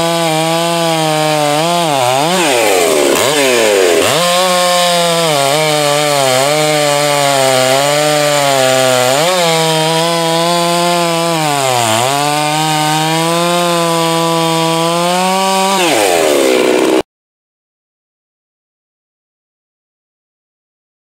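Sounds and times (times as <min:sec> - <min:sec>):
chainsaw cutting through log: 0:00.0 - 0:17.1.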